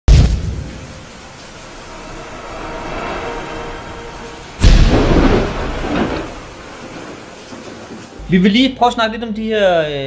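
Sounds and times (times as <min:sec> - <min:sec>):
noisy rumble: 0:00.9 - 0:07.4.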